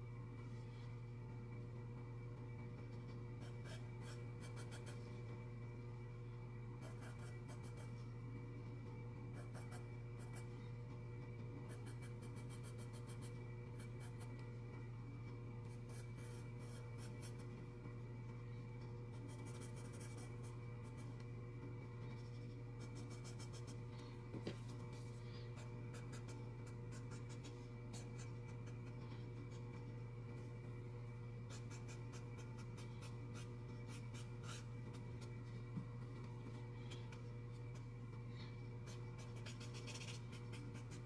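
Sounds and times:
steady low hum: 0.0s - 41.0s
pencil scratching on paper: 15.9s - 17.4s, 19.2s - 21.1s, 22.1s - 23.8s, 25.6s - 29.8s, 31.5s - 35.1s, 38.9s - 41.0s.

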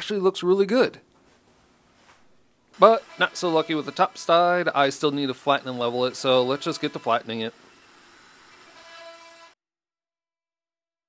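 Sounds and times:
wood router whining: 2.7s - 9.6s.

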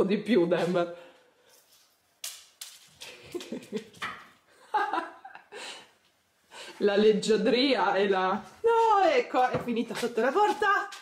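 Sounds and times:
woman chuckling: 3.0s - 4.0s.

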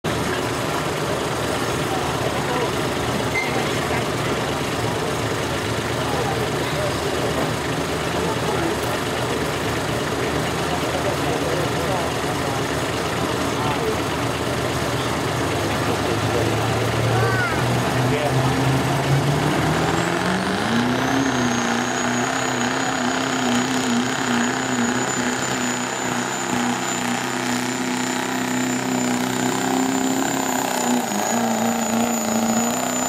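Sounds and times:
diesel truck engine running: 0.0s - 33.0s.

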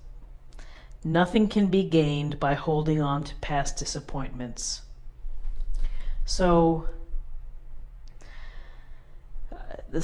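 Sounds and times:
low steady hum: 0.0s - 10.0s
woman breathing softly: 0.5s - 1.0s, 5.7s - 6.3s, 8.2s - 9.4s.

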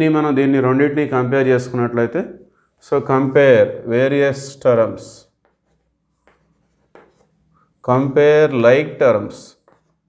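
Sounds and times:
chalk scratching on chalkboard: 5.4s - 7.6s.

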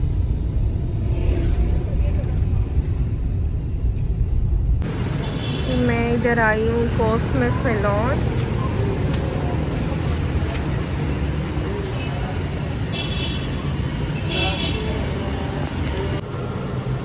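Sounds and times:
engine rumbling: 0.0s - 12.9s.

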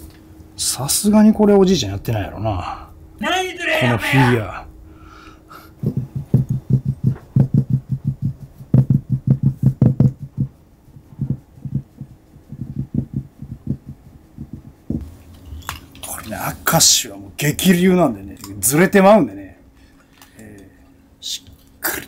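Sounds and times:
rapid low thumping: 0.4s - 15.2s.

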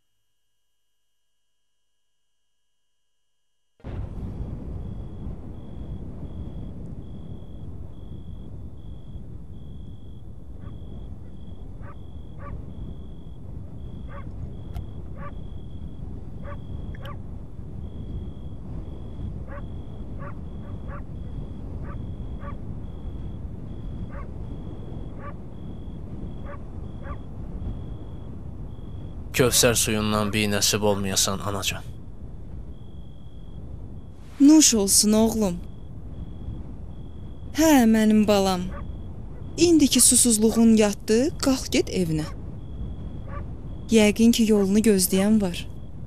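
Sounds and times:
low rumble: 3.8s - 46.0s
high pulsing insect chirp: 3.9s - 46.0s
frogs croaking: 5.1s - 46.0s.

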